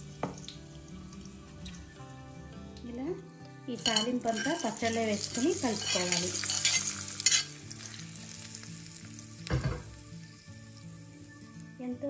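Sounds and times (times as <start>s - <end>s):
hot oil sizzling: 0.0s - 2.8s, 3.7s - 12.0s.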